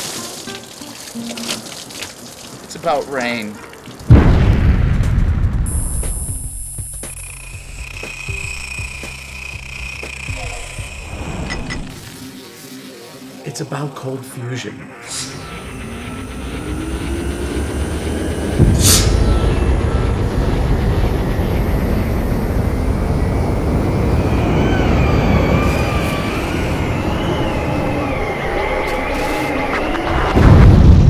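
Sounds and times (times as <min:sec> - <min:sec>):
warbling high tones: 0:05.7 - 0:12.4, 0:14.4 - 0:30.4
sweeping whoosh: 0:14.8 - 0:30.6
loud low rumble: 0:15.2 - 0:31.0.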